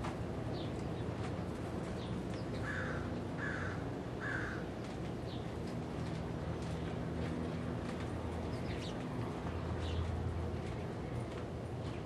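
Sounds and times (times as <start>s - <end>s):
low background hum: 0.0s - 12.0s
crow cawing: 2.6s - 4.7s.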